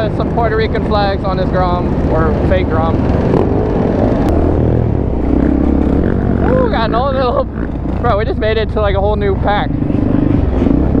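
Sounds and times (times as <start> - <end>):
man speaking: 0.0 - 3.0, 6.4 - 9.8
motorcycle engine running: 0.0 - 11.0.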